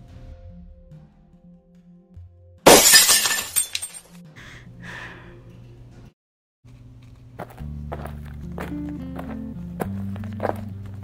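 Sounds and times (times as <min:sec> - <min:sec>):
glass shattering: 0:02.7 - 0:04.1
soft background music: 0:04.0 - 0:06.1, 0:07.4 - 0:11.0.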